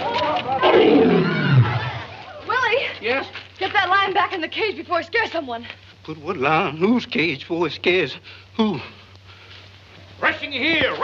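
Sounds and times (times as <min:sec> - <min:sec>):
lion roaring: 0:00.6 - 0:02.0.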